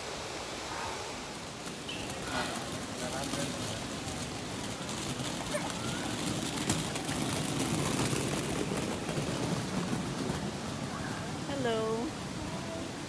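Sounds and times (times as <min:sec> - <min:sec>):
outdoor background hiss: 0:00.0 - 0:13.0.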